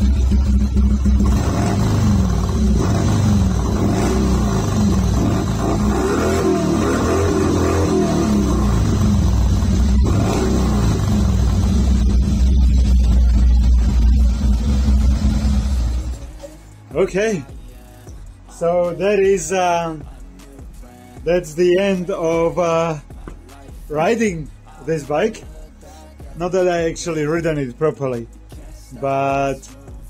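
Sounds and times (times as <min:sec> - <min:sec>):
motorcycle engine idling: 0:00.0 - 0:16.2.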